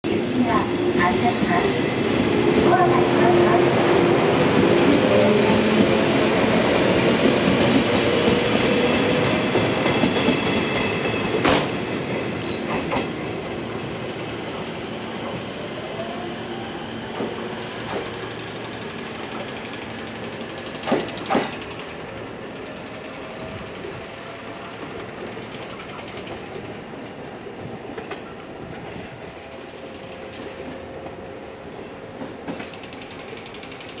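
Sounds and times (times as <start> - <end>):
electric train rumbling: 0.1 - 34.0.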